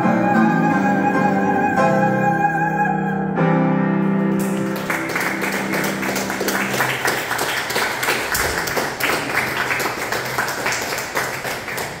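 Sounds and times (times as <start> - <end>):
audience applauding: 4.3 - 12.0.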